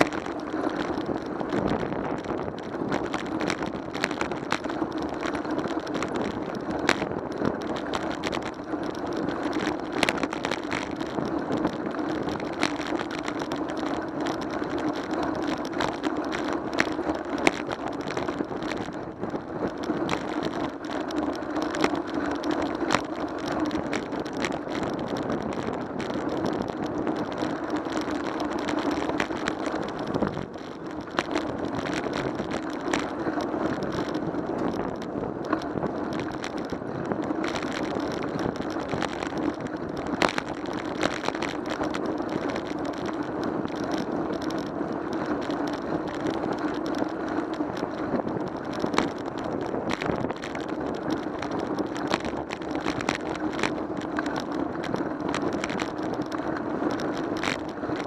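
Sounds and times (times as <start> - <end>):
road rumble: 0.0 - 58.0
small clicks and knocks: 0.0 - 58.0
wind noise: 0.0 - 58.0.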